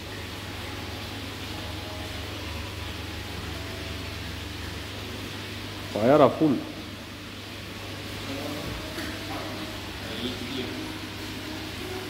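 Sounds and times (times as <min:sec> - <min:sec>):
aquarium pump hum: 0:00.0 - 0:12.0.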